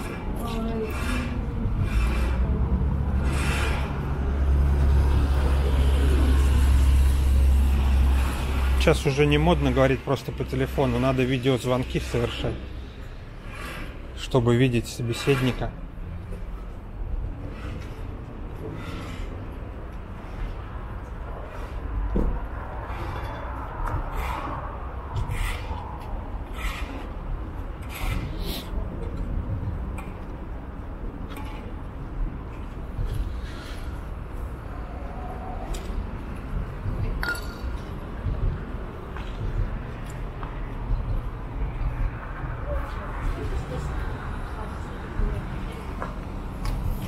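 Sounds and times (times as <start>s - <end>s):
traffic rumble: 0.0s - 47.0s.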